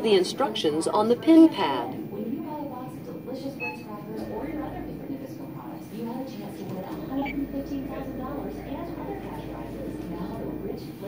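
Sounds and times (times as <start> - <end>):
indistinct voices talking: 0.0 - 11.0.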